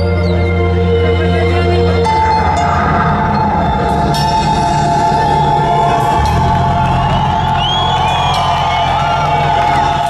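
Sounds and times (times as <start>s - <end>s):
heavy metal band playing: 1.6s - 10.0s
crowd cheering and whooping: 2.2s - 10.0s.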